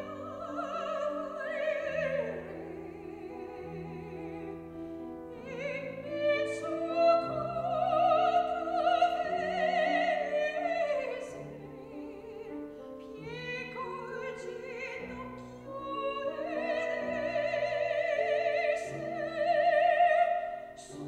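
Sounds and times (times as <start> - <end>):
grand piano accompaniment: 0.0 - 21.0
operatic soprano singing: 0.0 - 21.0.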